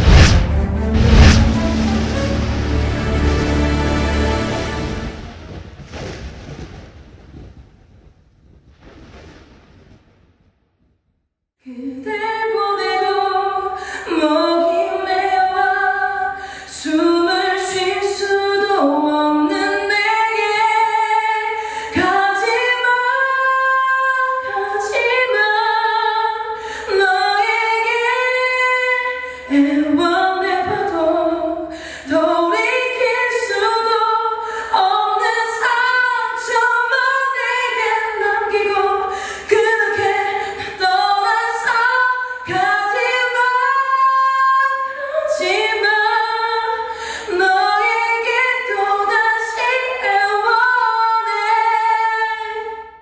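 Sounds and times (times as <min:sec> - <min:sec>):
woman singing a cappella: 0:11.6 - 0:53.0.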